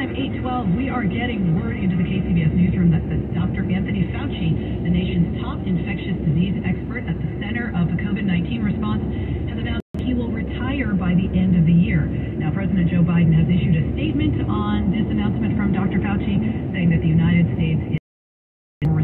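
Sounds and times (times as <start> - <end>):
car road and engine noise: 0.0 - 18.0
speech from car radio: 0.0 - 18.0.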